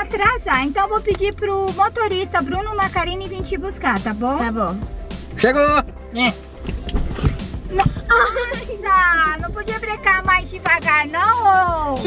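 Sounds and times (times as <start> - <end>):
light background music: 0.0 - 12.0
thumps and rustling inside car: 6.6 - 11.9.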